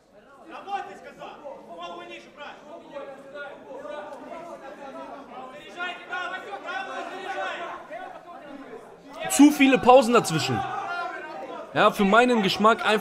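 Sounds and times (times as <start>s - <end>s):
crowd chattering and calling out: 0.0s - 13.0s.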